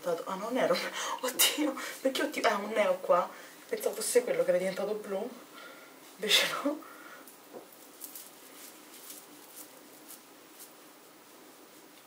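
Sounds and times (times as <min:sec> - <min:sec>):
wipe rubbing on skin: 0:07.3 - 0:12.0.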